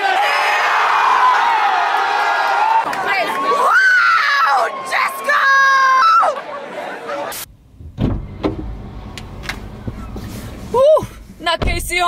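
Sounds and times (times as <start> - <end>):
car cabin low rumble: 7.5 - 12.0.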